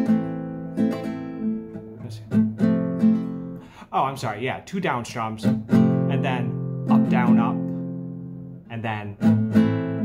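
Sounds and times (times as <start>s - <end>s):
classical guitar strummed: 0.0s - 10.0s.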